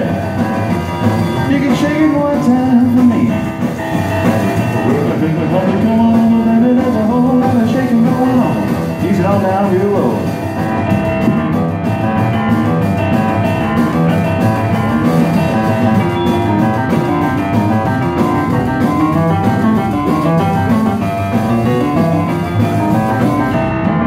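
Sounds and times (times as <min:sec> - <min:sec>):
drum kit: 0:00.0 - 0:24.0
grand piano fast notes: 0:00.0 - 0:24.0
upright bass: 0:00.0 - 0:24.0.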